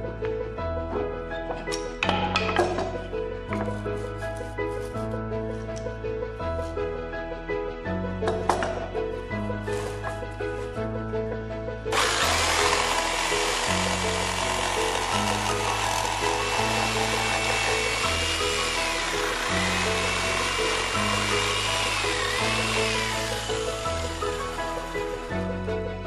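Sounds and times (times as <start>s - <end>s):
background music: 0.0s - 26.0s
electric jigsaw cutting wood: 11.9s - 25.4s.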